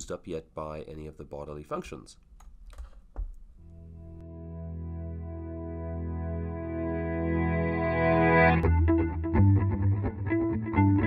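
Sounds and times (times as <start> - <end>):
keyboard clicks: 2.4 - 3.4
ambient synthesizer music: 3.6 - 11.0.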